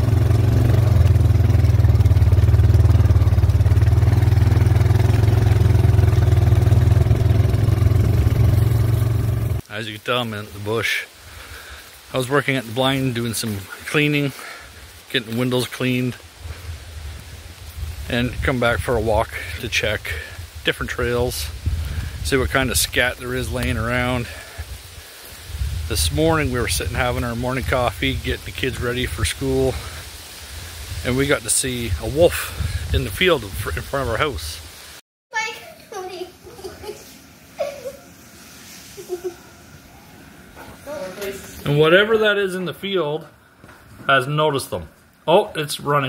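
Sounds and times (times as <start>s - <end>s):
faint hiss: 8.4s - 46.0s
wind buffeting microphone: 16.4s - 19.4s, 20.3s - 23.8s, 24.6s - 27.2s, 31.8s - 34.2s
child speaking: 35.3s - 37.2s, 40.6s - 41.6s.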